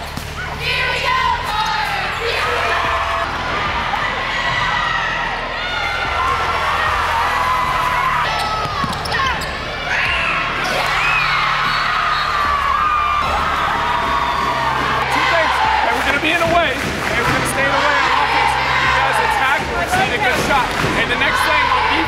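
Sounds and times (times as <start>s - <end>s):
sneakers squeaking: 8.2s - 16.7s
basketball bouncing: 8.6s - 9.5s.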